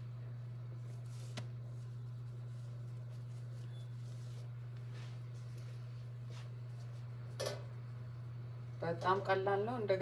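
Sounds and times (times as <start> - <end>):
steady low hum: 0.0 - 10.0
dry bread crackling: 0.6 - 7.3.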